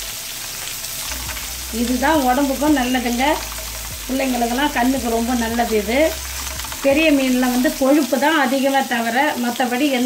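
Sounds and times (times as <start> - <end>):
fish sizzling in oil: 0.0 - 10.0
person speaking: 1.6 - 8.3.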